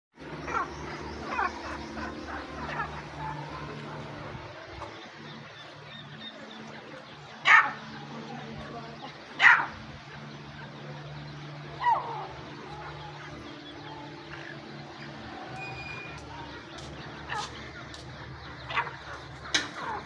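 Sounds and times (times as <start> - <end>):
francolin calling: 0.2 - 20.0.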